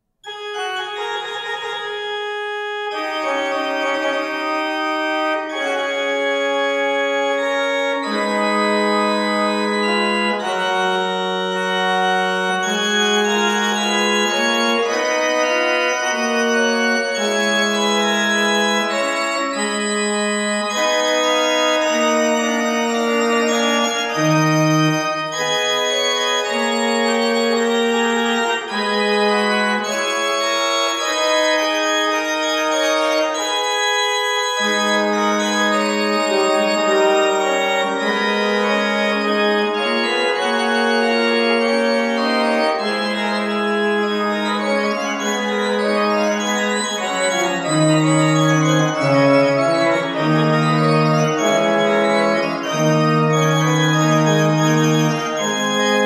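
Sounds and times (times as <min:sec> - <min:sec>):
pipe organ playing: 0:00.2 - 0:56.0.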